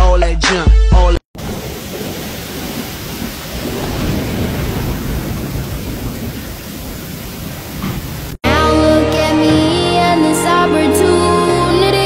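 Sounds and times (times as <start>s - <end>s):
heavy rain pouring: 1.4s - 8.4s.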